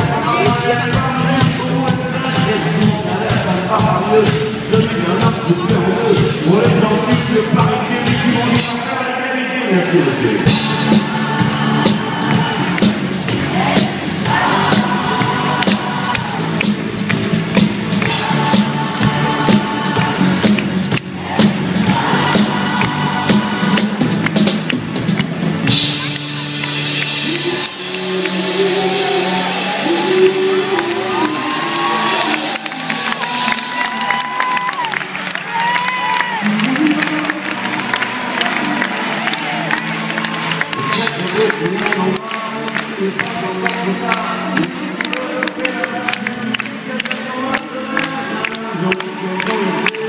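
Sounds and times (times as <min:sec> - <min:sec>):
driving drum beat: 0:00.0 - 0:09.0, 0:10.4 - 0:50.0
live rock band playing: 0:00.0 - 0:09.2, 0:10.3 - 0:50.0.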